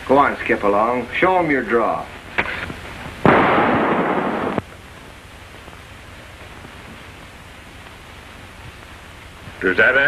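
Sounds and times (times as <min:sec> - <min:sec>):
rapid revolver gunfire: 0:03.2 - 0:04.6.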